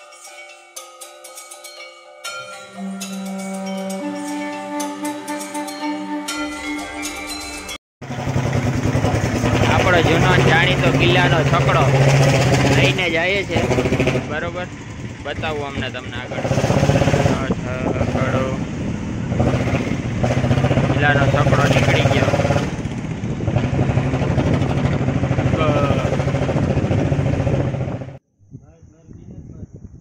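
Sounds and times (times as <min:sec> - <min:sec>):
background music: 0:00.0 - 0:07.8
engine humming: 0:08.0 - 0:28.2.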